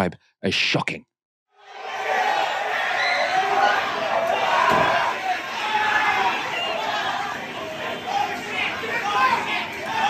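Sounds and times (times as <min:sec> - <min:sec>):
crowd shouting and yelling: 0:01.5 - 0:10.0
thud: 0:04.6 - 0:05.0.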